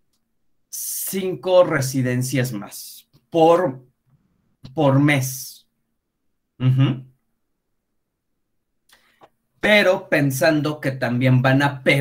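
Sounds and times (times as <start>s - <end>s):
person speaking: 0.7s - 3.9s, 4.6s - 5.7s, 6.6s - 7.2s, 9.6s - 12.0s
faint breath: 8.9s - 9.4s.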